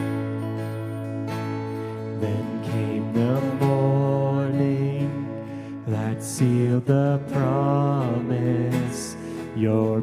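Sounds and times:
acoustic and electric guitars: 0.0s - 10.0s.

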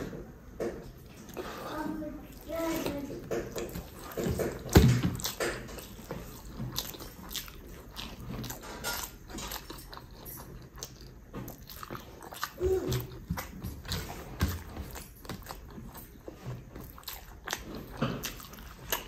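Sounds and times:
wet chewing and lip smacks: 2.2s - 19.0s.

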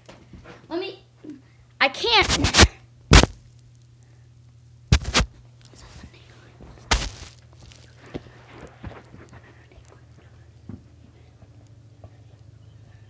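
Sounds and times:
ball thumping on carpet: 4.9s - 5.3s, 6.6s - 7.4s.

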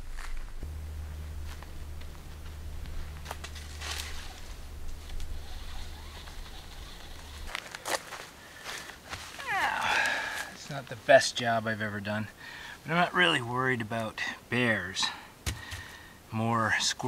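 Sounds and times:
low steady rumble: 0.0s - 7.8s
footsteps on forest floor: 6.0s - 10.6s.

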